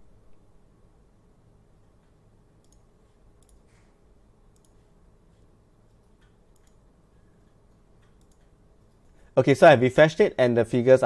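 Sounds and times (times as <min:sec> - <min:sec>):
computer mouse clicks: 0:02.0 - 0:03.9, 0:04.5 - 0:09.2.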